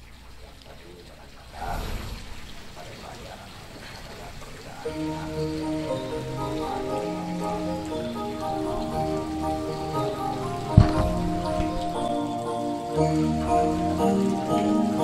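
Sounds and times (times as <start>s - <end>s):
slow background music: 4.6s - 15.0s
sharp thump: 10.8s - 11.8s.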